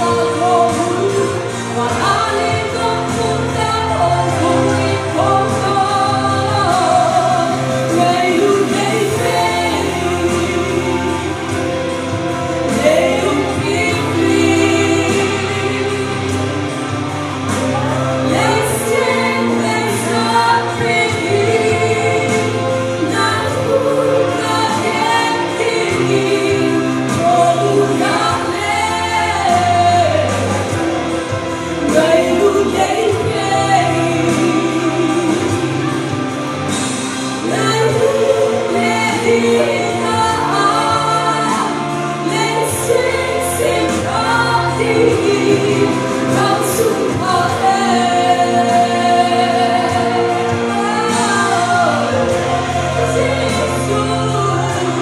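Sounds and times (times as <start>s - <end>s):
backing music with bass line: 0.0s - 55.0s
instrumental accompaniment: 0.0s - 55.0s
woman singing gospel: 0.0s - 55.0s.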